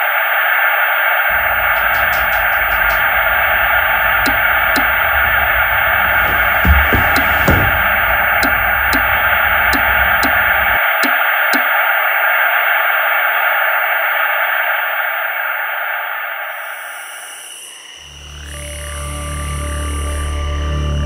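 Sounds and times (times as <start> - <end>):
television static hiss: 0.0 - 17.9
low ambient music drone: 0.0 - 21.0
channel-switching clicks: 1.8 - 12.0.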